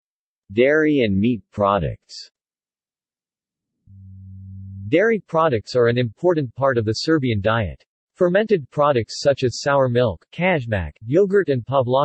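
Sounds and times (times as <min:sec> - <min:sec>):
synthetic voice: 0:00.5 - 0:02.3, 0:03.9 - 0:12.0
low buzzy electronic tone: 0:03.9 - 0:05.0.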